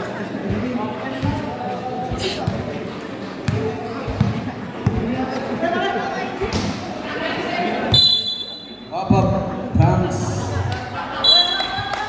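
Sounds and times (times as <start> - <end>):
chatter of players and spectators: 0.0 - 12.0
basketball bouncing on hard court: 1.1 - 1.5, 3.4 - 5.2.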